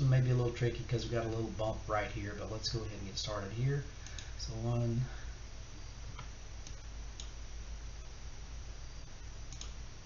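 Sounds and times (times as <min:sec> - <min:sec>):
low background hum: 0:00.0 - 0:10.0
computer mouse clicks: 0:04.0 - 0:04.3, 0:06.1 - 0:07.4, 0:09.5 - 0:09.8.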